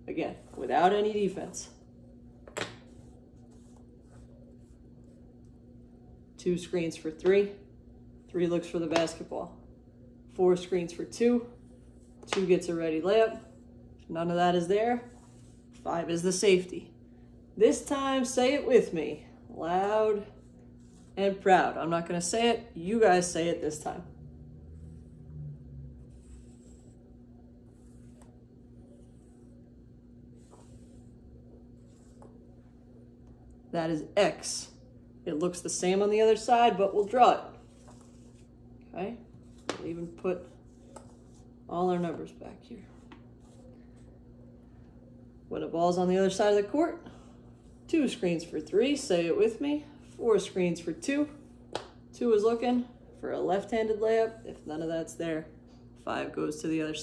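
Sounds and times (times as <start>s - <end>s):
low hum: 0.0s - 56.9s
magnets scraping on whiteboard: 26.1s - 27.1s, 30.4s - 32.5s, 37.0s - 38.5s.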